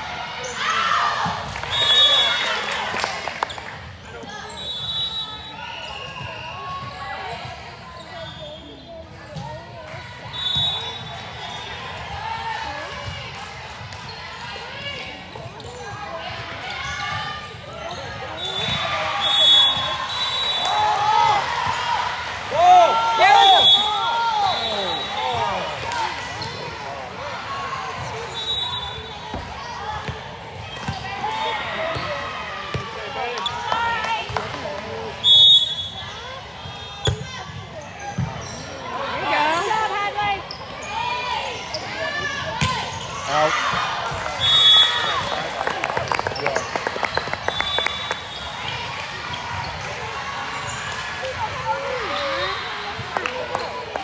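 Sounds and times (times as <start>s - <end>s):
players calling and shouting: 14.1s - 54.0s.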